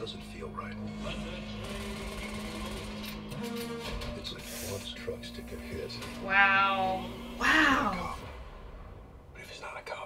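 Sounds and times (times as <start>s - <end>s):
hushed whispered speech: 9.4s - 10.0s.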